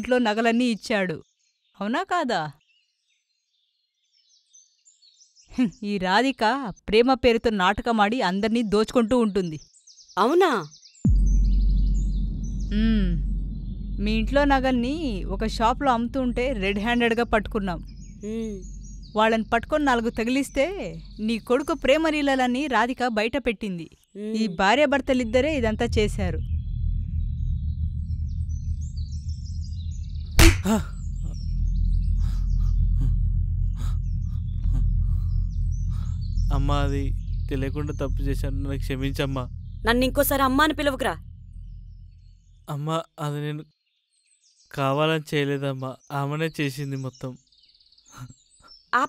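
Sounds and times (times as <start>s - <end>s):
birds chirping: 0.0s - 49.0s
bass drop into deep drone: 11.1s - 22.6s, 25.0s - 42.7s
slap across the face: 30.4s - 30.9s.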